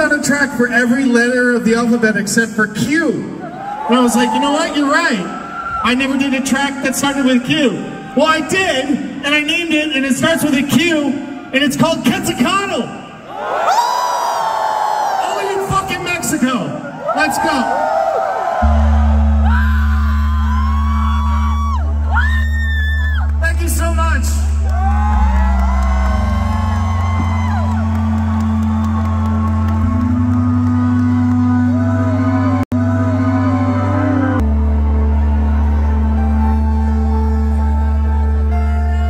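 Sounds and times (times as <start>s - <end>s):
crowd whooping and cheering: 3.3s - 8.9s, 13.2s - 39.0s
sustained low synthesizer chords: 18.6s - 39.0s.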